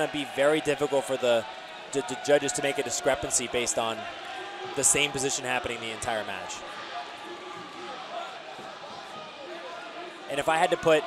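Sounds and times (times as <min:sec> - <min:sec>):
crowd murmuring in a hall: 0:05.8 - 0:11.0.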